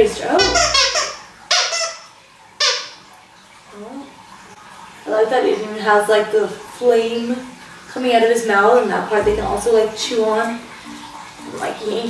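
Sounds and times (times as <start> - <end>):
dog toy squeaking: 0.4 - 3.0.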